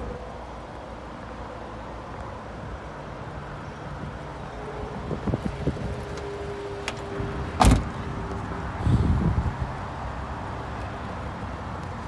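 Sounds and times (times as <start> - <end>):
car door shutting: 6.8 - 8.0.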